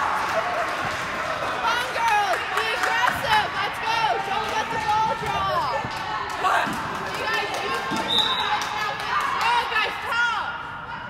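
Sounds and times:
people calling out in gym: 1.6s - 11.0s.

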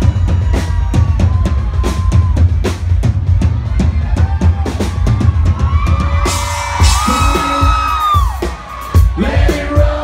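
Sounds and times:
crowd whooping: 0.0s - 9.8s
live country band music: 0.0s - 10.0s.

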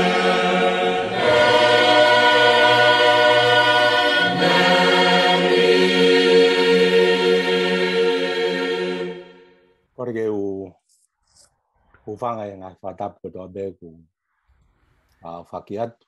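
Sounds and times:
choir singing held chords: 0.0s - 9.7s.

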